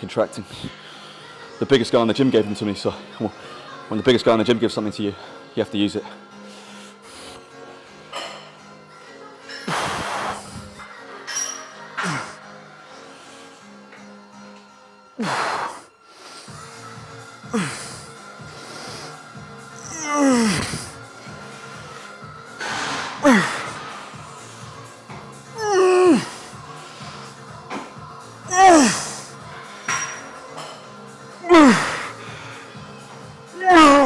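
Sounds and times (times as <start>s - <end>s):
background music: 0.0s - 34.0s
man groaning and exhaling: 17.5s - 18.1s, 19.8s - 21.0s, 23.0s - 23.8s, 25.6s - 26.4s, 28.5s - 29.3s, 31.4s - 32.1s, 33.6s - 34.0s.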